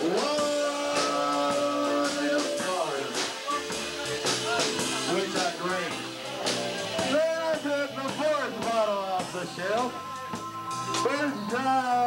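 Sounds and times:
drum kit beat: 0.0s - 12.0s
guitar: 0.0s - 12.0s
live band playing: 0.0s - 12.0s.

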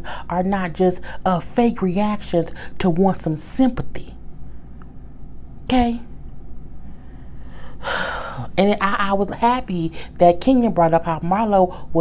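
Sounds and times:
low steady hum: 0.0s - 12.0s
person breathing in: 6.8s - 8.5s.

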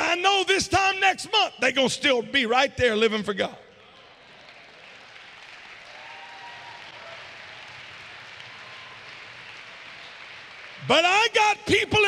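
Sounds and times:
congregation applauding: 3.9s - 12.0s.

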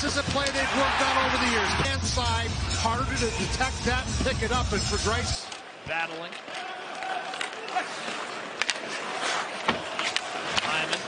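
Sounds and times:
skates on ice: 6.5s - 11.0s
sticks striking puck: 7.3s - 11.0s.

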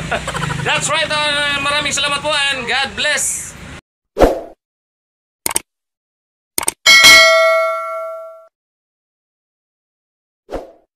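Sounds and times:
quick clicks: 5.4s - 5.7s, 6.6s - 6.8s
bell ding: 6.9s - 8.5s.

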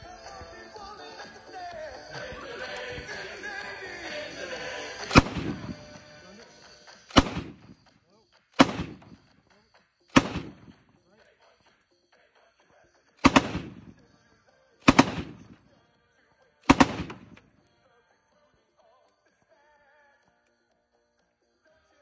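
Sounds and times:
loud rifle shots echoing: 5.1s - 6.2s, 7.1s - 7.8s, 8.6s - 9.2s, 10.1s - 10.8s, 13.2s - 14.0s, 14.8s - 15.6s, 16.7s - 17.4s.

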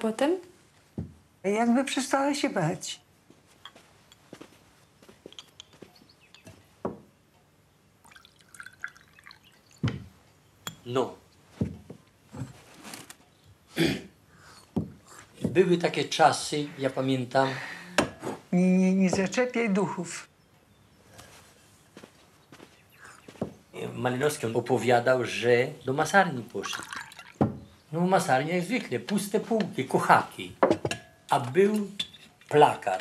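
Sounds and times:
water dripping in glass bowl: 8.0s - 10.0s, 26.5s - 27.4s.

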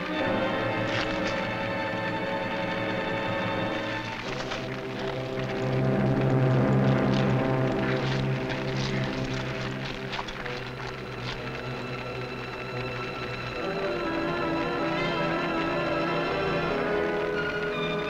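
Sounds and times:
dramatic orchestral music: 0.0s - 18.0s
rushing noise with crackles: 0.0s - 18.0s.

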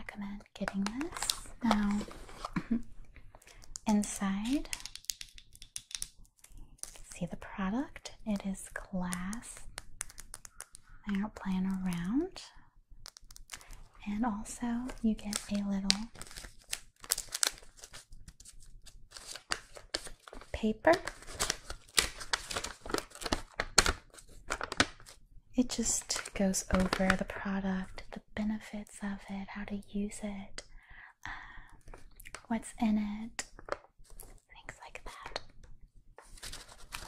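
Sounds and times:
paper crinkling and rustling: 0.7s - 2.8s, 14.8s - 25.2s, 36.2s - 37.0s
paper snapping: 9.6s - 10.8s.

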